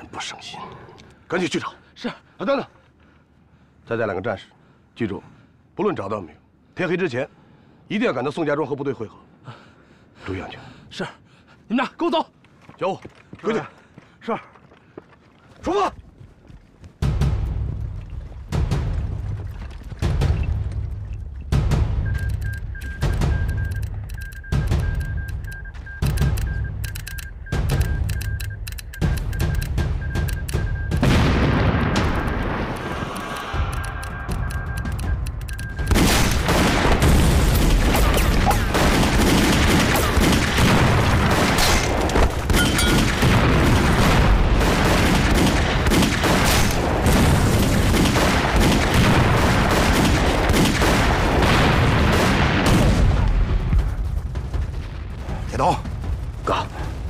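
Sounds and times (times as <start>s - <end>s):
film music score: 17.0s - 43.6s
explosions: 29.7s - 34.7s, 35.7s - 57.0s
gunfire: 35.8s - 54.5s.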